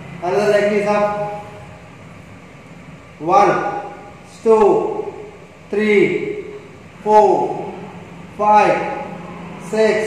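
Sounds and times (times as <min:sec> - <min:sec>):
faint room noise: 0:00.0 - 0:10.0
man speaking: 0:00.2 - 0:01.7, 0:03.2 - 0:10.0.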